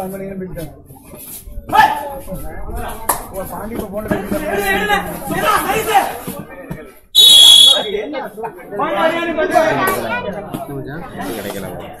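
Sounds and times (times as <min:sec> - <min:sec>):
crowd talking: 0:00.0 - 0:12.0
referee's whistle blast: 0:07.2 - 0:08.0.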